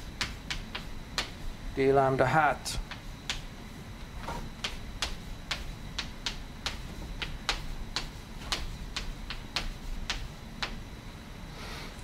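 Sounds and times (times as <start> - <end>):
chalk tapping on blackboard: 0.0 - 1.4, 2.8 - 3.5, 4.6 - 10.8.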